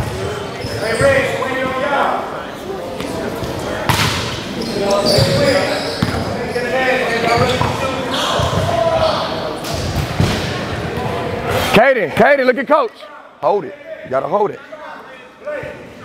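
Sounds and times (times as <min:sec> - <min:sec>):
echoing chatter: 0:00.0 - 0:16.0.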